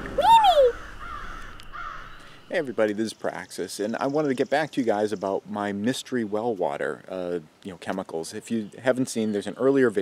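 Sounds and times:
cartoon sound effect: 0:00.1 - 0:00.8.

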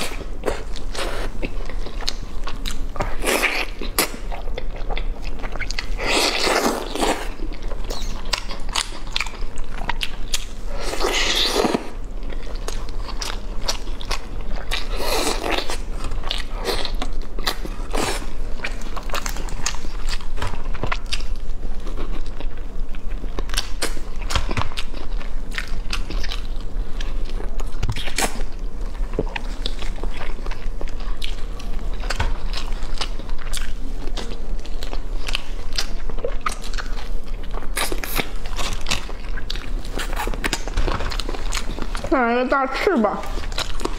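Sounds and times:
chewing and biting: 0:00.0 - 0:42.1, 0:43.2 - 0:43.9.

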